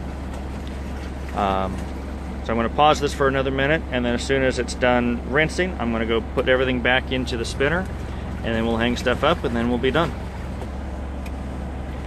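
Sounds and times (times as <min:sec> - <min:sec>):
washing machine motor hum: 0:00.0 - 0:12.0.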